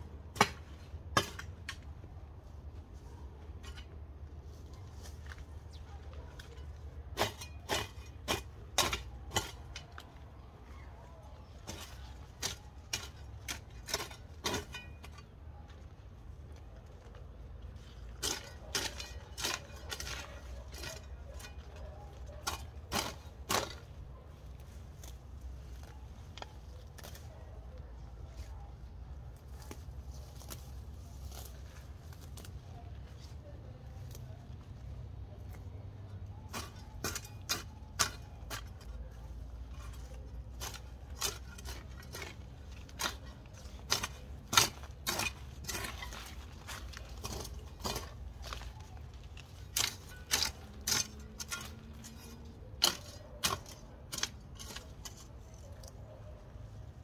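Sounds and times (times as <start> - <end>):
plant stalks clicking and snapping: 24.6 - 28.5, 29.3 - 34.8, 36.6 - 56.0.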